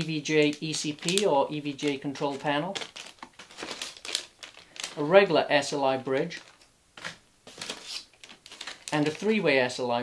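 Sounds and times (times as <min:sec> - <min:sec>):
plastic bag crinkling: 0:00.0 - 0:09.8.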